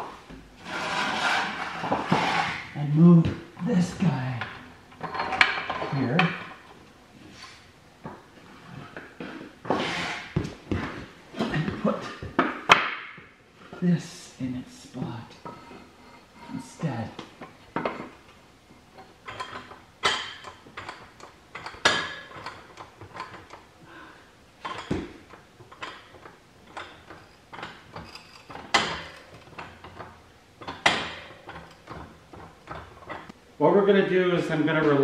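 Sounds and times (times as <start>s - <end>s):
metal clanks on concrete floor: 4.4s - 6.7s.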